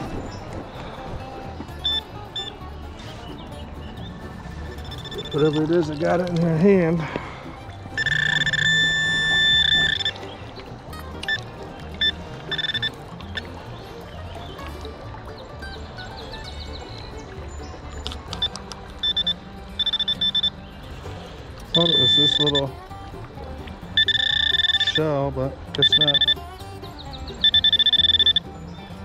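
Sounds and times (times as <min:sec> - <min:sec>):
metal detector tone: 0:01.8 - 0:02.6, 0:04.4 - 0:06.2, 0:08.0 - 0:10.2, 0:12.0 - 0:13.5, 0:18.4 - 0:20.5, 0:21.7 - 0:22.8, 0:24.0 - 0:25.1, 0:25.7 - 0:26.5, 0:27.4 - 0:28.4
short electronic beeps: 0:01.8 - 0:02.6, 0:04.3 - 0:05.7, 0:08.0 - 0:10.3, 0:11.2 - 0:11.4, 0:12.0 - 0:13.5, 0:18.4 - 0:20.6, 0:21.7 - 0:22.8, 0:24.0 - 0:25.0, 0:25.8 - 0:26.5, 0:27.4 - 0:28.5.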